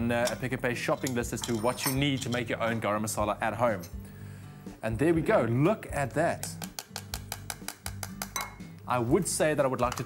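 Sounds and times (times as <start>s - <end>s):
metal spoon tapping and scraping: 0.2s - 2.6s, 6.3s - 8.8s, 9.8s - 10.0s.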